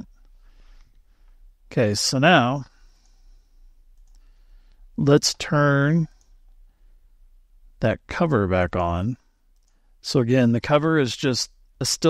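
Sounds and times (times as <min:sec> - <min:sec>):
faint mouse clicks: 0:03.9 - 0:04.8, 0:09.5 - 0:09.8.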